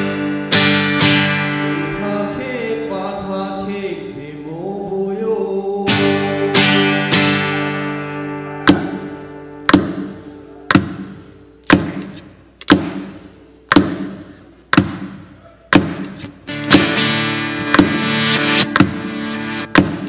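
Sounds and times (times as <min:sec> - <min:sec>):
acoustic guitar chords: 0:00.0 - 0:20.0
percussive guitar strike: 0:08.6 - 0:20.0.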